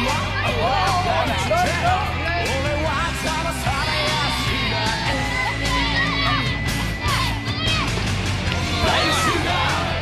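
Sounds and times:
children shouting and cheering: 0:00.0 - 0:02.5, 0:03.1 - 0:10.0.

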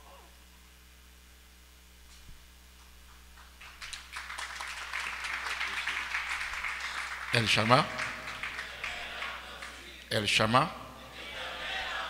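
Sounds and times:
congregation applauding: 0:03.4 - 0:09.9.

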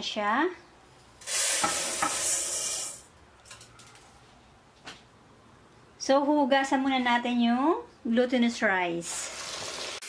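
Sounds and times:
rice grains pouring into a pot: 0:01.2 - 0:03.0.

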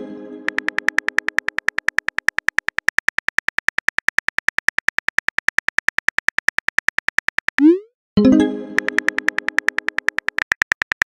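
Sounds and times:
phone keyboard clicks: 0:00.5 - 0:07.6, 0:08.8 - 0:11.0.

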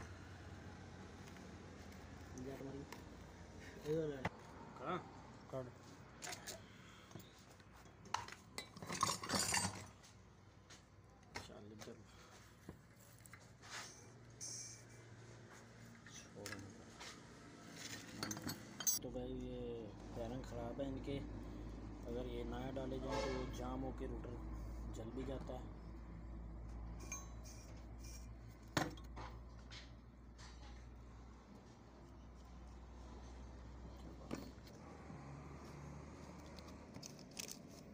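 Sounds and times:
metal tools clinking and knocking: 0:07.8 - 0:10.1, 0:17.8 - 0:19.0, 0:27.0 - 0:30.8
metal parts clinking: 0:08.1 - 0:10.0, 0:17.9 - 0:19.0, 0:37.0 - 0:37.9.

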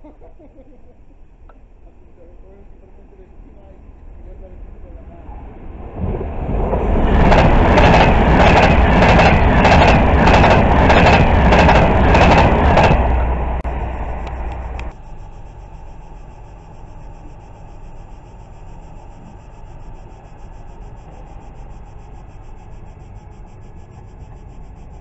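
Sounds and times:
train passing at speed: 0:02.7 - 0:24.9
wheels clacking over rail joints: 0:06.8 - 0:13.3.

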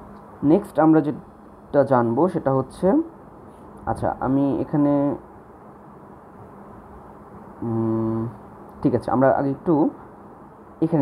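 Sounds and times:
faint room hiss: 0:00.0 - 0:11.0
person hesitation sound: 0:07.6 - 0:08.4.

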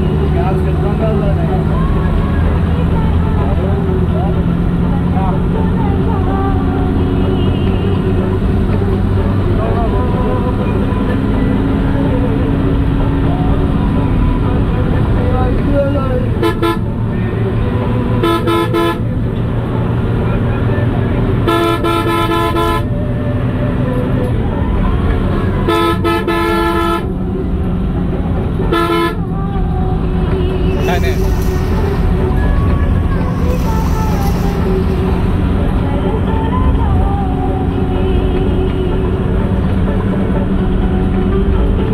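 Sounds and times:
large vehicle engine droning: 0:00.0 - 0:41.9
vehicle horn blasts: 0:07.2 - 0:08.1, 0:16.4 - 0:16.9, 0:18.2 - 0:19.0, 0:21.4 - 0:22.9, 0:25.6 - 0:27.1, 0:28.7 - 0:29.2.

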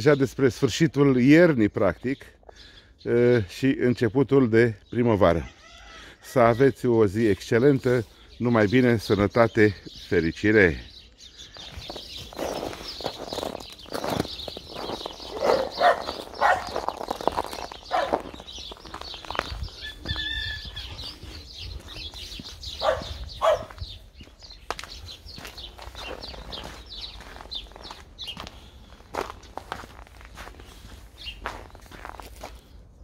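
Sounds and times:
birds calling: 0:00.0 - 0:33.0
footsteps on packed snow: 0:11.4 - 0:32.8.

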